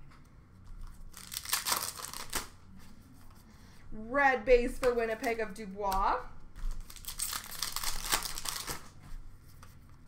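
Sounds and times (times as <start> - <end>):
cards rustling and crinkling: 0.6 - 3.4, 6.6 - 10.0.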